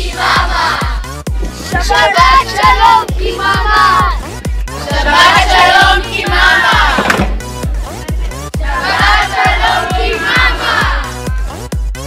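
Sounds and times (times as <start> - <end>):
dance music: 0.0 - 12.0
children shouting: 8.7 - 11.2.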